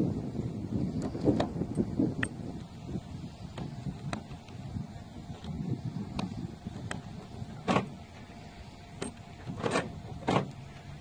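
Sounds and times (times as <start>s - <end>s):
key scraping in car lock: 9.0s - 10.6s.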